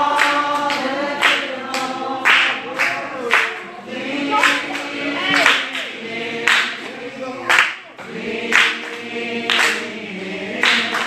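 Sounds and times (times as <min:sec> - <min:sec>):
group singing gospel unaccompanied: 0:00.0 - 0:11.0.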